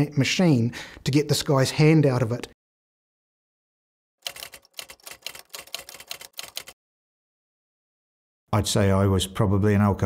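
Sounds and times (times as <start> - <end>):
typewriter keystrokes clicking: 4.2 - 6.8.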